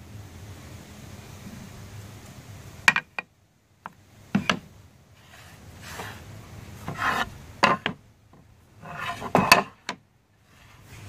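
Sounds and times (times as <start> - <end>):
wooden boards scraping together: 4.4 - 8.0, 8.8 - 11.0
wooden boards clacking: 6.9 - 8.0.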